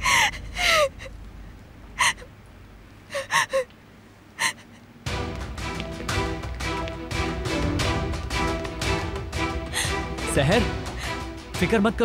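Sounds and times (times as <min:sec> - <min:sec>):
woman sobbing: 0:00.0 - 0:01.1, 0:02.0 - 0:02.3, 0:03.1 - 0:03.7, 0:04.4 - 0:04.8, 0:09.7 - 0:10.0.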